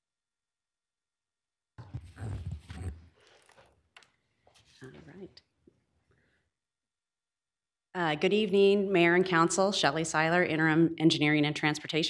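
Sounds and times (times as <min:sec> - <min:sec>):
microphone handling thumps: 0:01.8 - 0:03.1.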